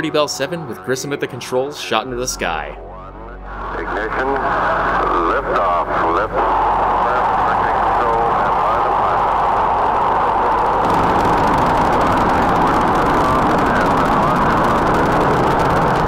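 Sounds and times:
rocket engine roaring: 0:03.7 - 0:16.0.

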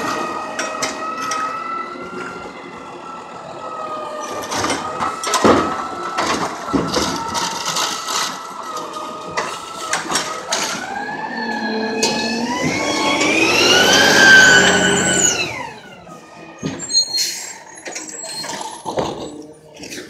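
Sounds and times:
garbage truck whine passing by: 0:00.0 - 0:19.8.

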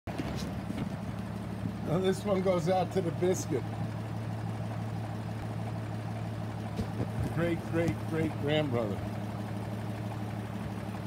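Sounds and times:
car engine idling: 0:00.1 - 0:11.0.

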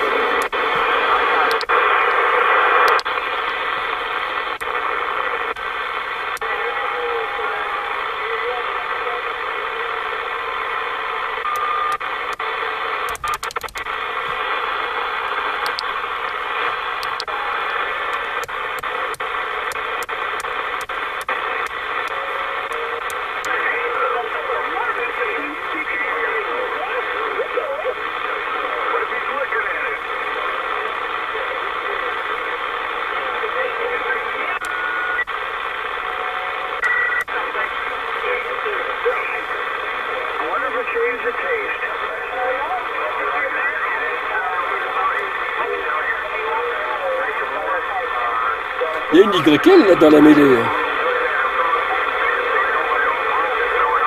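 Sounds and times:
radio static hiss: 0:00.0 - 0:54.0
voices talking over radio: 0:00.0 - 0:54.0.

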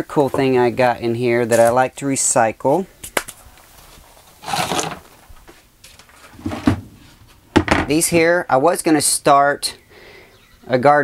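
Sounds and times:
plastic scraping rustle: 0:03.6 - 0:07.4
plastic buckets clicking: 0:04.4 - 0:05.2
dull knock: 0:07.6 - 0:07.9.

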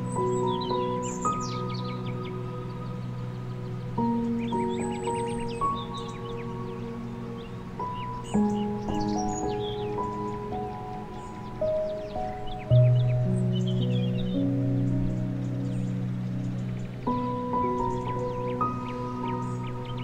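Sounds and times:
birds chirping: 0:00.0 - 0:20.0
slow calm music: 0:00.0 - 0:20.0.

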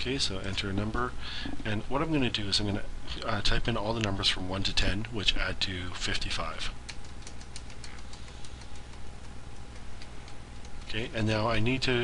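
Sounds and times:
faint steady hum: 0:00.0 - 0:12.0
keyboard keys clicking: 0:06.8 - 0:10.9.

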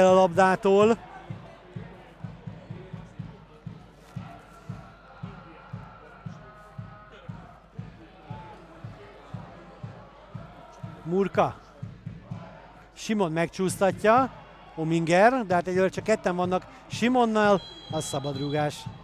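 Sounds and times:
drum beating low thuds: 0:00.0 - 0:13.0
faint crowd voices: 0:00.0 - 0:19.0.

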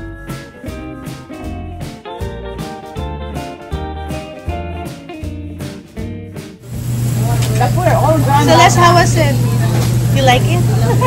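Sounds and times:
loud steady low hum: 0:06.7 - 0:11.0.

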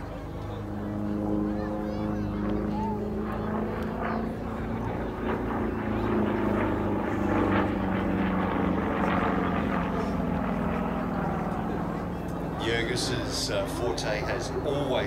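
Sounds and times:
propeller plane engine drone: 0:00.0 - 0:15.0.

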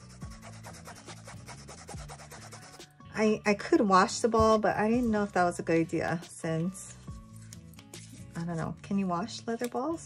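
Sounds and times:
pad scrubbing a football: 0:00.0 - 0:02.8.

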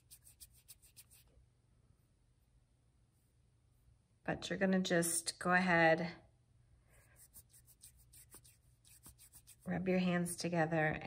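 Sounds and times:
palms rubbing together: 0:00.0 - 0:01.3, 0:06.9 - 0:10.0.

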